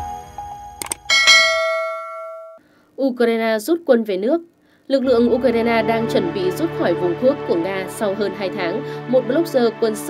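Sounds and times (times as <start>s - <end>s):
bell chime ringing: 0.8s - 2.6s.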